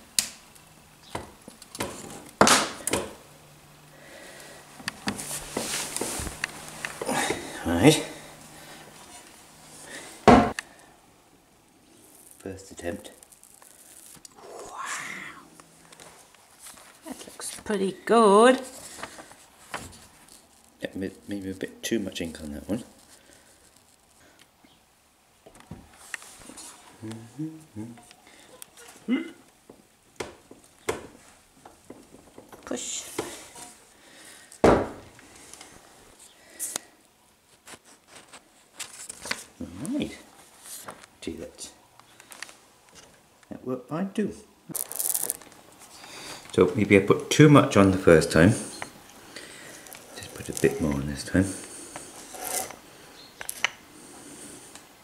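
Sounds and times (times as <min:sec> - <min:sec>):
paper peeling crackles: 0:12.0 - 0:14.4, 0:22.2 - 0:24.3, 0:44.7 - 0:46.0, 0:49.8 - 0:52.8.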